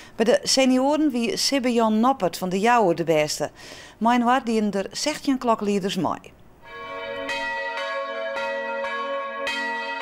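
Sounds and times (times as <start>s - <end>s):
church bells ringing: 6.6s - 10.0s.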